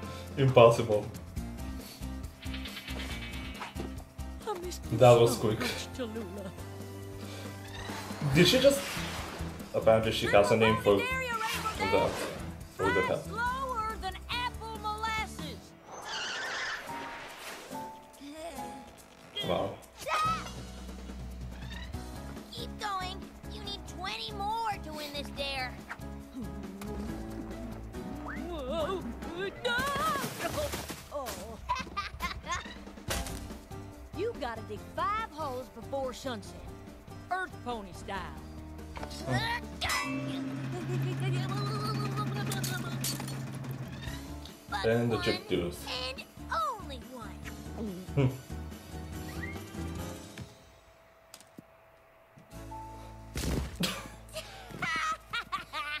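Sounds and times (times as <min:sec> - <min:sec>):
background music: 0:00.0 - 0:56.0
cartoon character voice: 0:10.3 - 0:15.6, 0:19.4 - 0:20.5, 0:28.4 - 0:32.9, 0:39.2 - 0:43.2, 0:44.2 - 0:47.5
metallic clanging and clinking: 0:39.8 - 0:40.5, 0:42.3 - 0:43.7.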